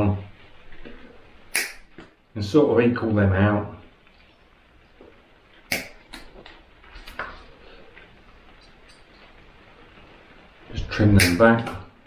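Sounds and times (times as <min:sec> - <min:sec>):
pliers snapping wire: 0:01.5 - 0:01.8.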